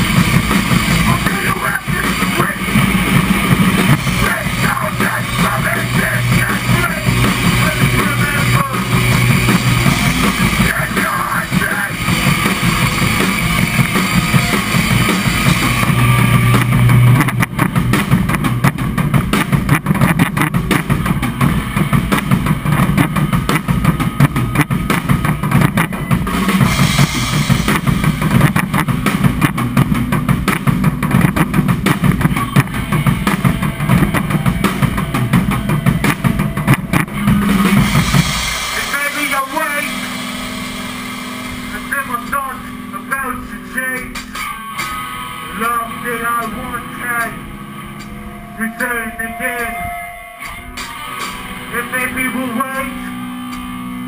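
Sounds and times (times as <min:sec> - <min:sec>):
distorted electric guitars: 0:00.0 - 0:54.0
drum kit: 0:00.0 - 0:54.0.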